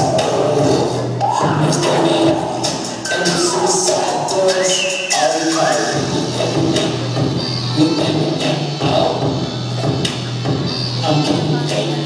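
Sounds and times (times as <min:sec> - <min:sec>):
dance music over loudspeakers: 0:00.0 - 0:12.0.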